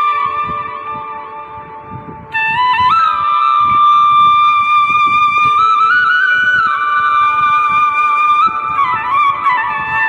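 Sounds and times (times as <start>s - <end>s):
slow melody of long notes: 0.0s - 10.0s.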